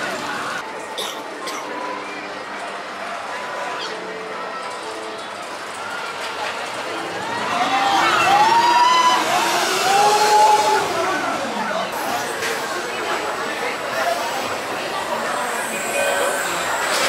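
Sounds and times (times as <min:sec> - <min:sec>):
roller coaster rolling on track: 0:00.0 - 0:17.0
riders shouting whoops: 0:07.3 - 0:11.3.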